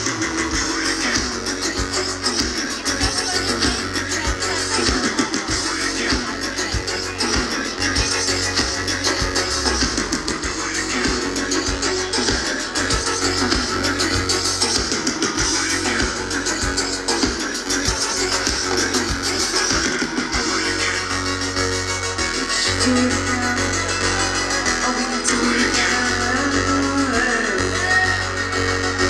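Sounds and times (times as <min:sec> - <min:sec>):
steady drum beat: 0:00.0 - 0:28.1
keyboard and synthesizer: 0:00.0 - 0:29.0
live electronic dance-pop band: 0:00.0 - 0:29.0.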